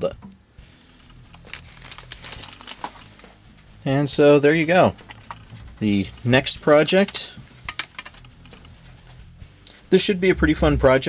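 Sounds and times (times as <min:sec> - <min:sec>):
faint steady hum: 0:00.0 - 0:11.0
plastic parts clicking and rustling: 0:01.0 - 0:03.2, 0:04.8 - 0:08.7.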